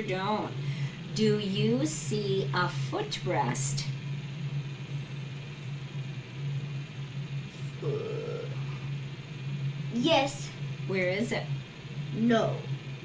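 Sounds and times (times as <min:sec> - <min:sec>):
low room hum: 0:00.0 - 0:13.0
boy saying uh: 0:07.7 - 0:08.8, 0:10.0 - 0:10.6, 0:12.2 - 0:12.7.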